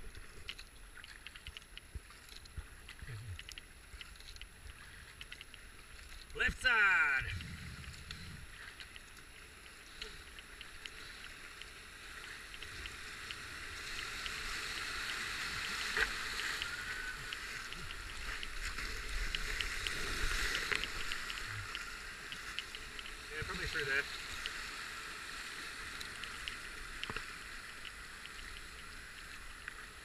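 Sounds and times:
paddle splashes: 3.8s - 28.2s.

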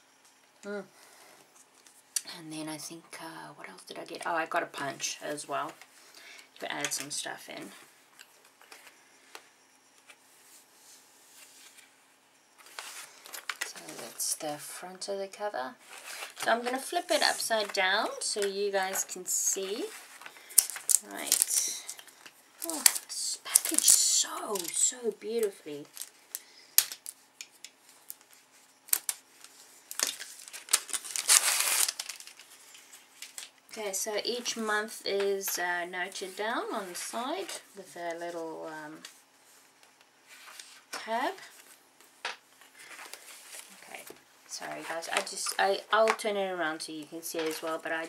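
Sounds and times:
paper rustling: 15.8s - 33.5s.

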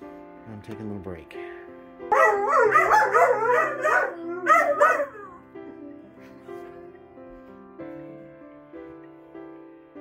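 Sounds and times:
dog howling: 2.1s - 6.2s.

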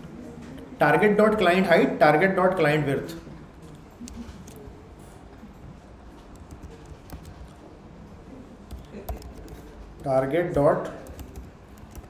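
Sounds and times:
low background hum: 0.0s - 12.0s
keyboard keystrokes: 6.3s - 7.6s.

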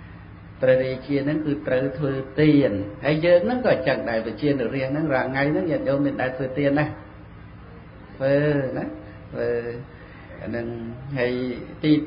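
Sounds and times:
man speaking into a microphone: 0.6s - 7.0s, 8.2s - 12.0s.

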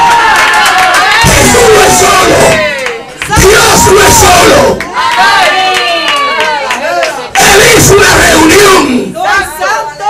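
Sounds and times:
man shouting into a microphone: 1.2s - 4.8s, 6.8s - 10.0s.

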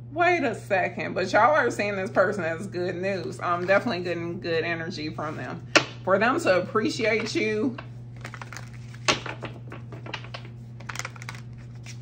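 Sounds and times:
steady low hum: 0.0s - 12.0s
cards being shuffled: 8.1s - 12.0s.

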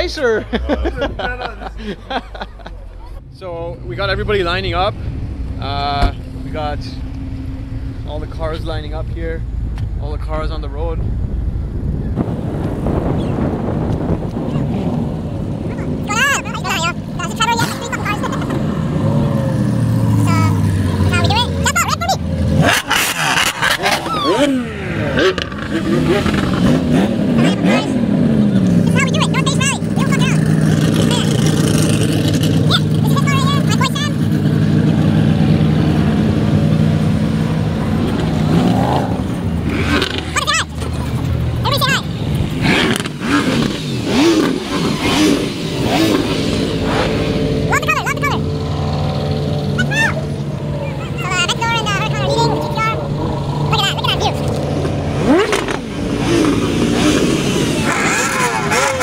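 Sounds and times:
car engines revving: 0.0s - 59.0s.

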